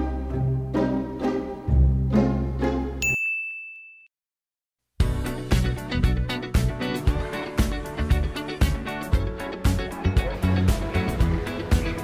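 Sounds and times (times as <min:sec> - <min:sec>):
music: 0:00.0 - 0:03.0, 0:05.0 - 0:12.0
high ding ringing: 0:03.0 - 0:04.1.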